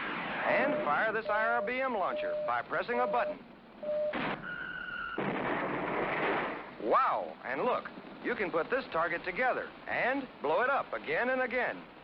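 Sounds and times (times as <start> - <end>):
rushing explosion: 4.2 - 6.9.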